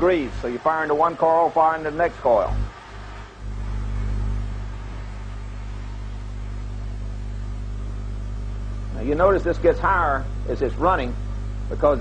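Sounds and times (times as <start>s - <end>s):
electric motor humming: 0.0s - 12.0s.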